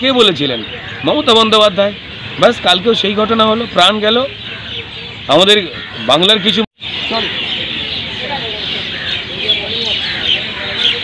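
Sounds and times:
man speaking: 0.0 - 4.4, 5.2 - 6.7
outdoor background noise: 0.0 - 11.0.

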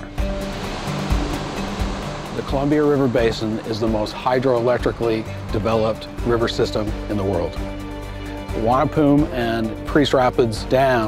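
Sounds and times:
churning whitewater rushing: 0.0 - 7.5
background music: 0.0 - 11.0.

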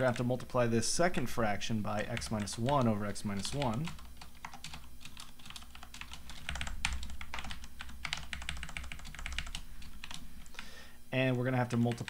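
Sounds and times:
computer keyboard typing: 0.0 - 0.6, 2.0 - 10.7, 11.7 - 12.0
low steady hum: 0.0 - 12.0.

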